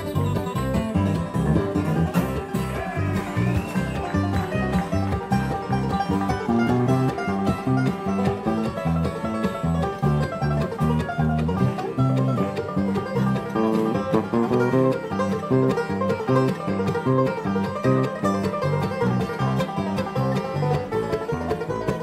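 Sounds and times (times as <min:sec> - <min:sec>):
banjo picking: 0:00.0 - 0:22.0
electric bass line: 0:00.0 - 0:22.0
mandolin: 0:00.0 - 0:22.0.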